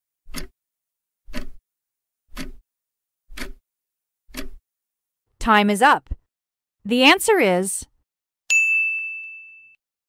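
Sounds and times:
bright ding chime: 8.5s - 9.8s.

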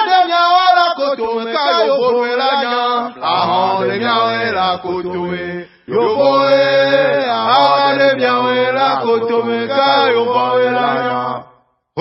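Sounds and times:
voices chanting a song: 0.0s - 11.6s.

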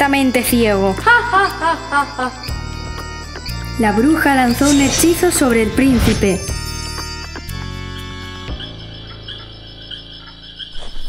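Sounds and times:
crickets chirping: 8.5s - 11.0s.

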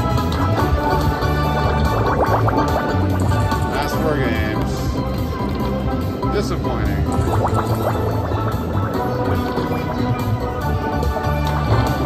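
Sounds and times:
looping electronic slot machine music: 0.0s - 12.0s.

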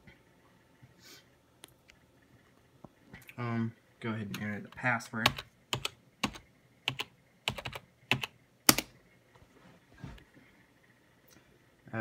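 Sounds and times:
keyboard keystrokes: 5.3s - 8.9s.

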